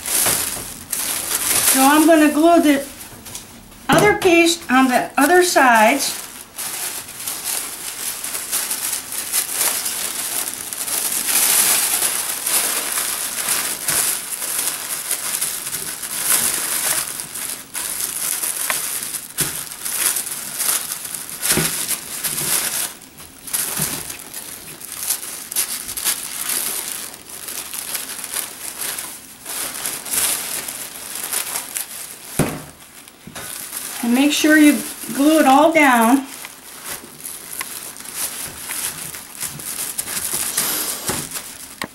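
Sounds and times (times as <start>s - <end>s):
tissue paper crinkling: 0.0s - 41.9s.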